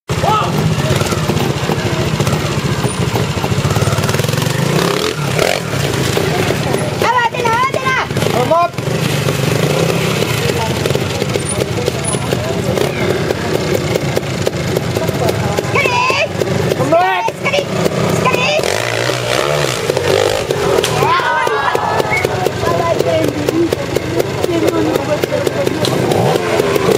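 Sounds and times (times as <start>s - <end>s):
people shouting: 0.1s - 8.2s, 15.4s - 23.2s
motorcycle engine at low revs: 0.1s - 26.9s.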